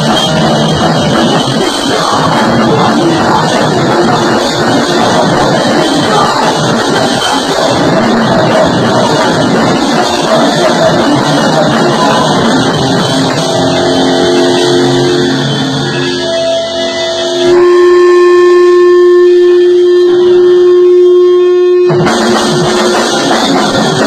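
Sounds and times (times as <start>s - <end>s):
rock band playing live: 0.0s - 20.8s, 21.8s - 24.0s
electric guitar held notes: 0.0s - 24.0s.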